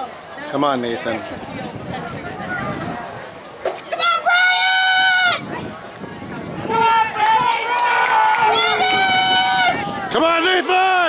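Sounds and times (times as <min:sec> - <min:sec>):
spectators yelling long cheers: 0:03.9 - 0:05.7, 0:06.5 - 0:11.0.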